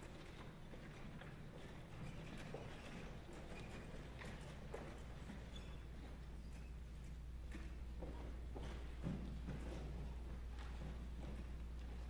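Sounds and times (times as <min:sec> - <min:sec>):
footsteps on hollow wooden stage: 0:00.0 - 0:12.0.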